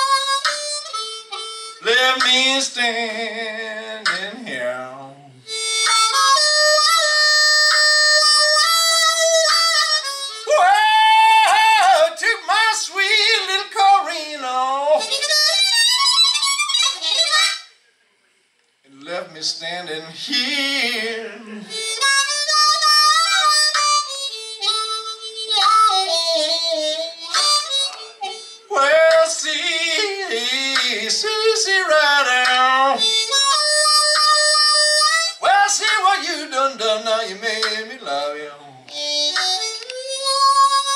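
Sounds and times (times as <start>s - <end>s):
blues harmonica: 0.0s - 17.8s, 20.2s - 40.9s.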